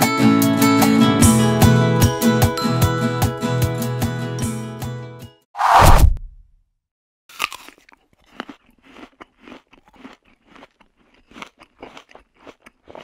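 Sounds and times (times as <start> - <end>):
apple crunching bite: 7.3 - 13.0
crunchy chewing: 7.3 - 13.0.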